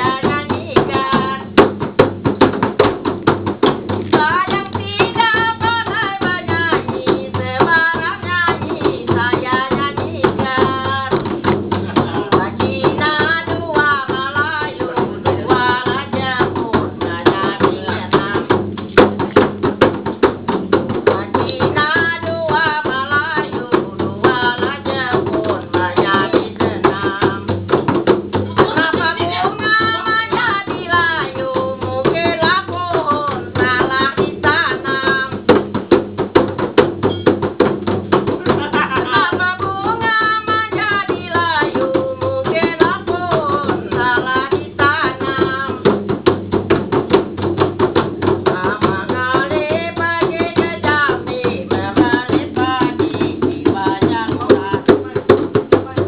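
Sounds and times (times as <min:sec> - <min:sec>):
frame drums played by hand: 0:00.0 - 0:56.0
person singing: 0:11.9 - 0:18.6, 0:21.1 - 0:27.7, 0:38.4 - 0:45.9, 0:48.5 - 0:56.0.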